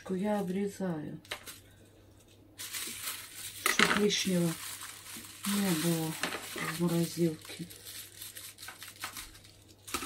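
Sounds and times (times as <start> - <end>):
plastic bag crinkling: 1.3 - 10.0.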